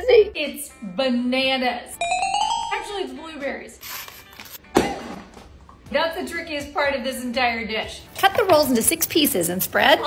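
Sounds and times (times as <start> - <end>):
paper wrapper peeling: 3.8 - 4.6.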